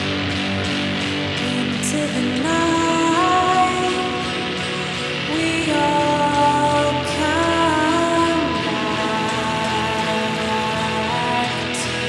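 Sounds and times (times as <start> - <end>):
electric guitar strummed: 0.0 - 12.0.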